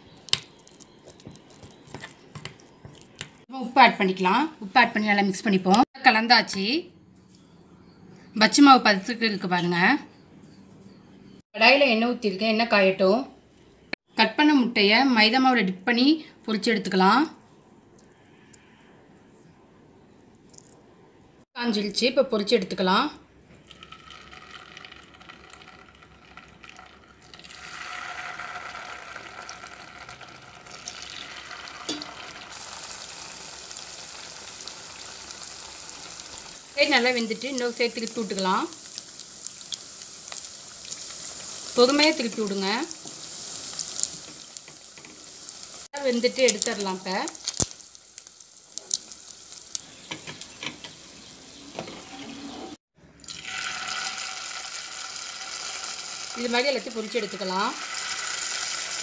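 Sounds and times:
food deep-frying in oil: 0.0s - 5.8s, 23.6s - 59.0s
loud steady sizzle: 23.7s - 51.9s, 53.2s - 59.0s
light crackles and clicks: 46.4s - 51.0s.

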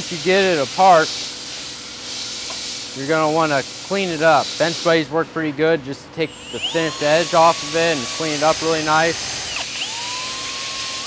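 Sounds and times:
background hiss: 0.0s - 9.7s.

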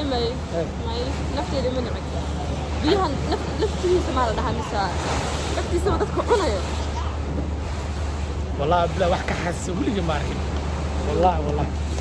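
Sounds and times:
boat engine rumble: 0.0s - 12.0s
wind buffeting microphone: 0.0s - 12.0s.

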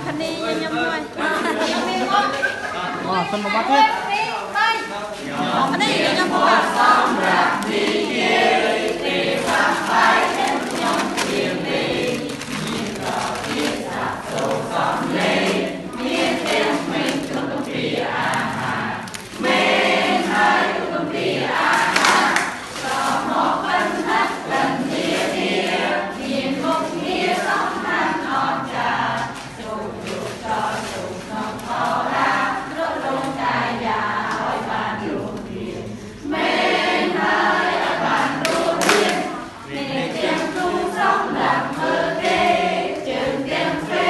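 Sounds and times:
group singing: 0.0s - 44.0s.

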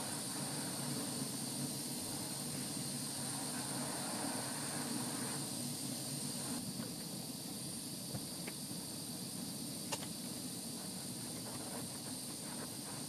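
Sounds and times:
glass torch hissing: 0.0s - 13.0s.

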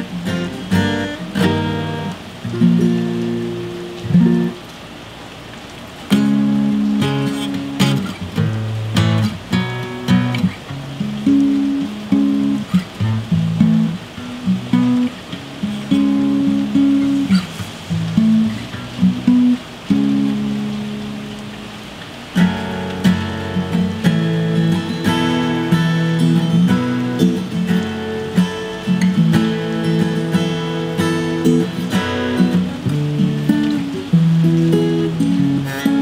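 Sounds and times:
acoustic guitar chord strummed: 0.0s - 4.6s, 6.1s - 36.0s
steady rain: 0.0s - 36.0s.

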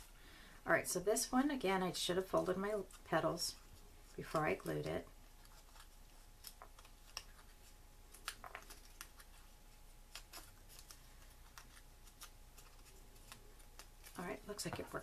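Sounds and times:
paper crinkling: 2.3s - 15.0s.

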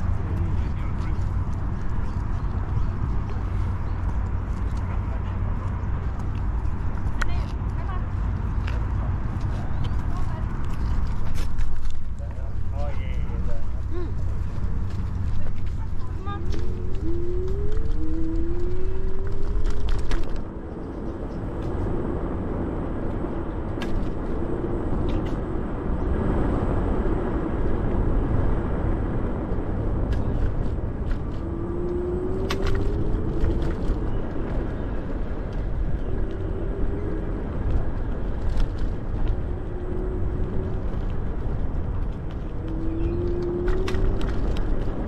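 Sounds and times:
wind rushing on microphone: 0.0s - 45.0s.

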